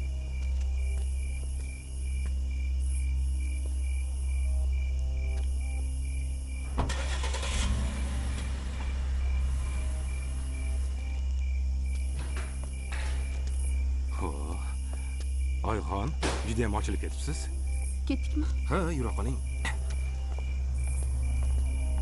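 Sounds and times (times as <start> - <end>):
car engine starting: 6.2 - 14.0, 18.6 - 22.0.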